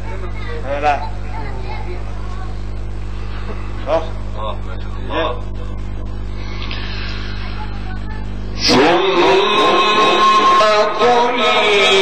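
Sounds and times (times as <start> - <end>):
electrical hum: 0.0 - 12.0
man chanting over loudspeakers: 8.6 - 12.0.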